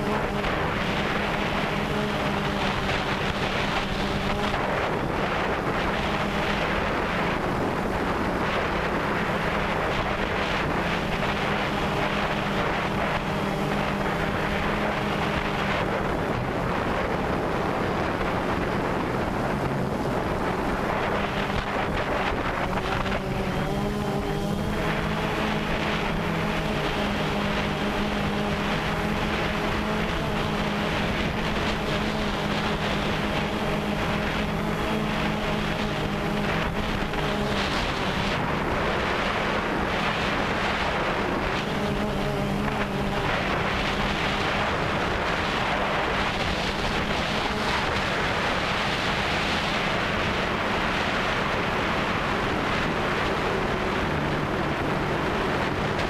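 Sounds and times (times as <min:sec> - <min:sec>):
drone motors buzzing: 0:00.0 - 0:56.0
wind on microphone: 0:00.0 - 0:56.0.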